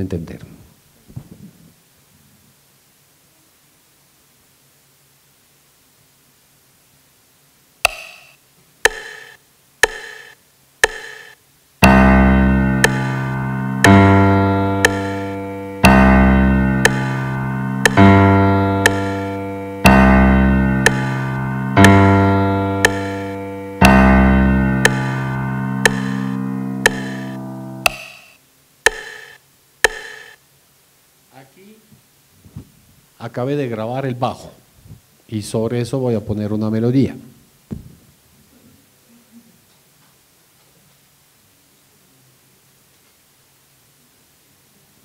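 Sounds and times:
metronome clicking: 7.8s - 30.4s
low bass piano notes: 11.8s - 27.9s.

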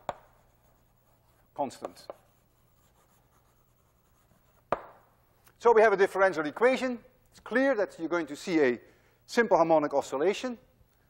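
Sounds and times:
chalk scratching on blackboard: 0.0s - 5.0s
chalk tapping on board: 0.0s - 5.1s.

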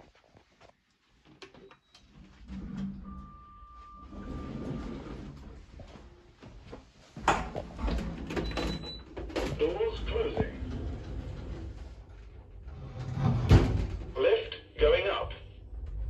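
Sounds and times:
sliding lift doors rumbling: 2.1s - 6.2s, 7.2s - 14.2s, 15.5s - 16.0s
footsteps: 5.4s - 7.8s.

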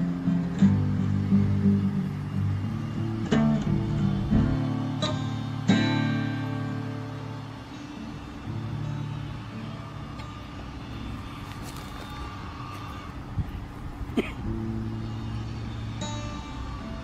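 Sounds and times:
soft music: 0.0s - 13.4s
passing motor vehicle rumble: 0.0s - 17.0s.

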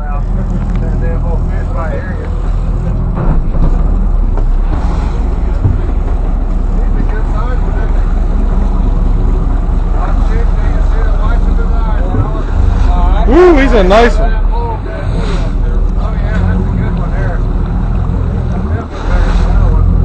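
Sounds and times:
people talking: 0.0s - 3.4s, 4.8s - 20.0s
boat engine humming: 0.0s - 20.0s.

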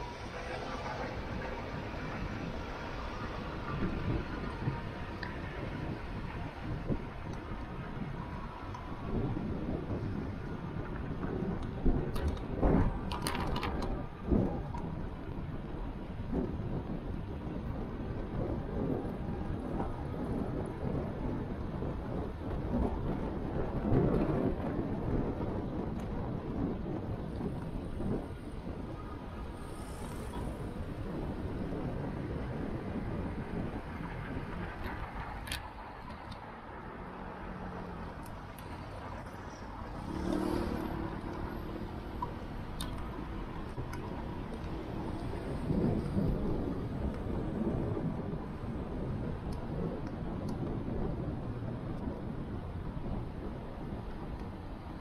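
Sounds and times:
road and traffic noise: 0.0s - 55.0s
wind buffeting microphone: 0.0s - 55.0s.

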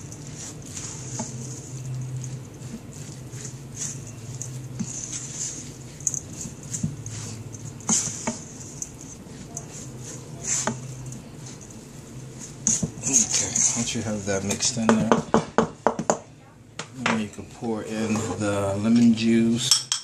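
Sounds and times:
spatula stirring mixture in bowl: 0.0s - 15.7s.

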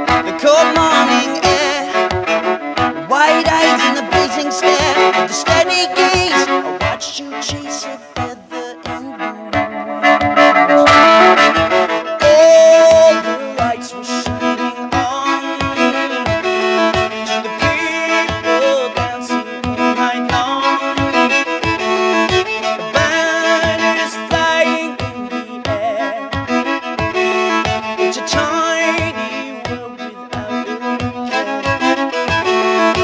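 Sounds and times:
viola playing folk tune: 0.0s - 33.0s.

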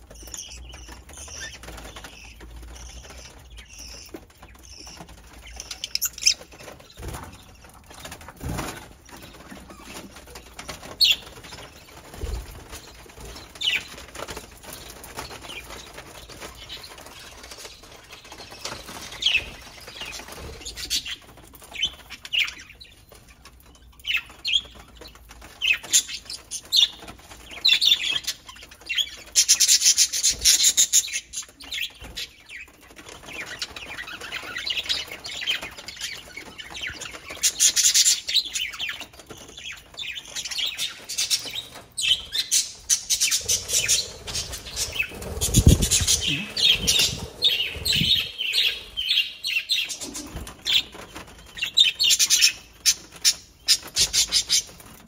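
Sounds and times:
budgerigars chirping: 0.2s - 7.2s, 40.5s - 51.0s.

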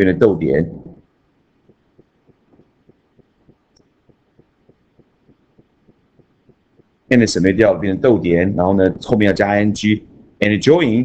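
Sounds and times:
faint low thumps: 0.5s - 9.2s.

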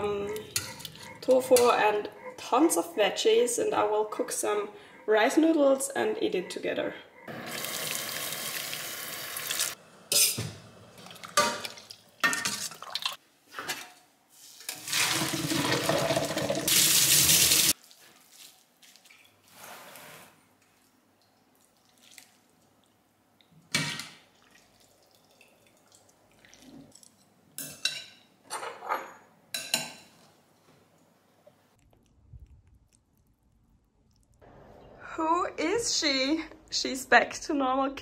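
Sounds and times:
water pouring into saucepan: 14.7s - 17.7s.

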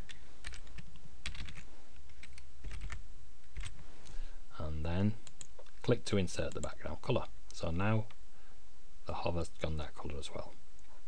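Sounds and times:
faint low hum: 0.0s - 11.0s
computer keyboard typing: 0.1s - 3.8s.

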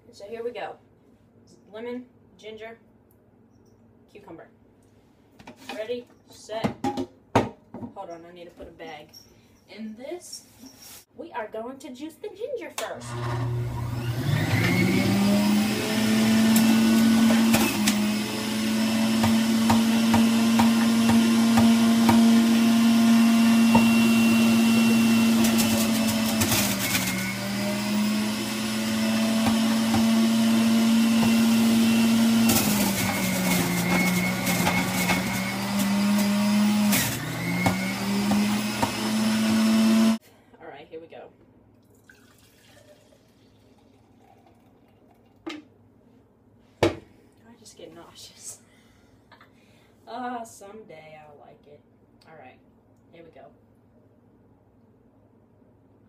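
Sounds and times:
juicer motor humming: 13.0s - 40.2s.

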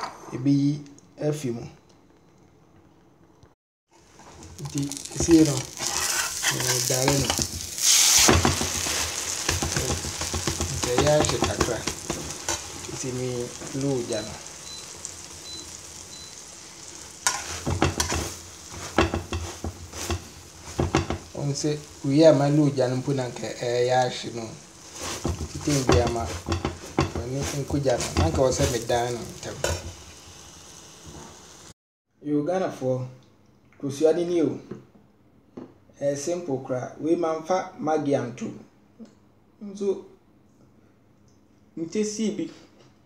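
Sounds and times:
omelette sizzling in a frying pan: 3.9s - 31.8s
spatula scraping and tapping pan: 4.2s - 14.3s, 17.1s - 22.0s, 24.8s - 30.0s
person speaking: 4.5s - 7.5s, 9.5s - 14.6s, 20.0s - 29.9s.

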